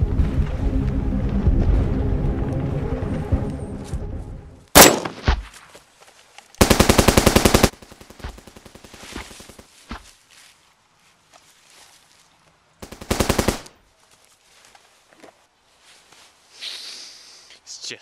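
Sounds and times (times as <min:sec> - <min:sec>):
background music: 0:00.0 - 0:04.7
automatic gunfire burst: 0:04.8 - 0:05.2, 0:06.6 - 0:07.8, 0:12.8 - 0:13.7
loud gunshot: 0:04.8 - 0:05.4.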